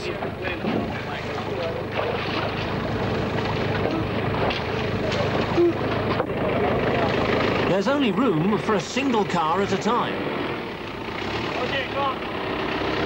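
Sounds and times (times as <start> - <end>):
people's voices: 0.0 - 10.6, 11.4 - 12.3
engine running steadily: 0.0 - 13.0.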